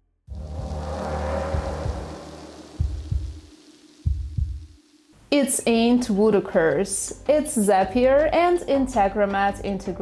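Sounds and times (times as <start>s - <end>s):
low rumbling drone: 0.3s - 5.1s
heartbeat double thumps: 2.8s - 4.8s.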